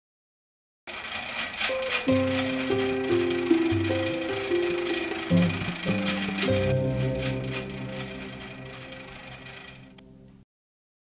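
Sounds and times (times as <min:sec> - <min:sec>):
spinning wheel whirring: 0:00.9 - 0:10.1
held musical note: 0:01.7 - 0:10.2.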